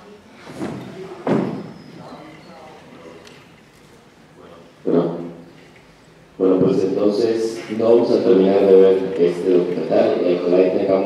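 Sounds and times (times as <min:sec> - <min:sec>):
man's amplified voice: 0:04.8 - 0:05.5, 0:06.4 - 0:11.0.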